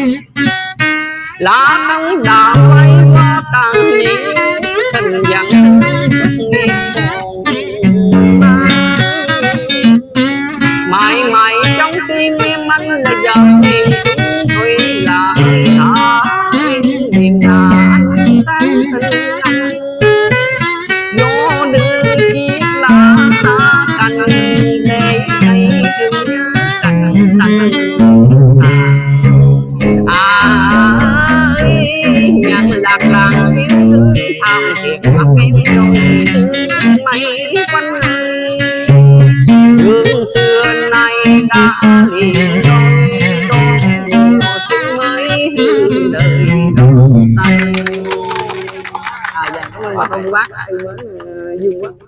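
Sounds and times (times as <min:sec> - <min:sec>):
acoustic guitar melody: 0:00.0 - 0:52.0.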